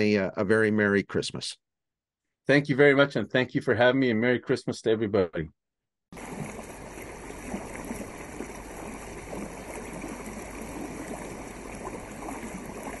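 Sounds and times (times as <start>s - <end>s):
water lapping against canoe hull: 6.2s - 13.0s.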